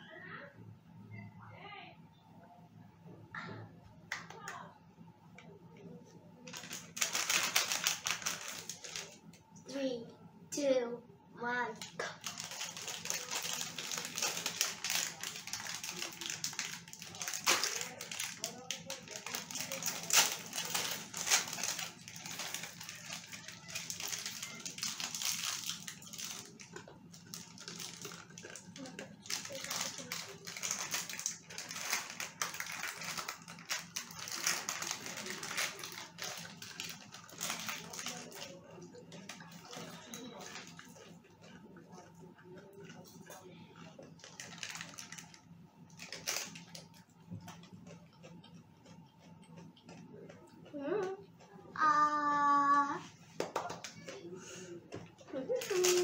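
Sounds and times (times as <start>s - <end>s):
plastic wrappers crinkling: 6.4s - 9.4s, 11.8s - 48.3s, 55.4s - 56.0s.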